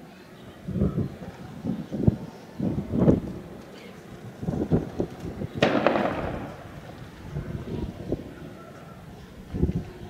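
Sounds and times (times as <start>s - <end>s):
sharp bang: 5.6s - 6.7s.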